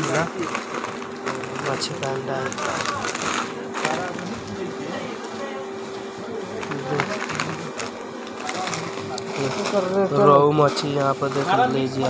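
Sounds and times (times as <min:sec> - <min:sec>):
steady even hum: 0:00.0 - 0:12.0.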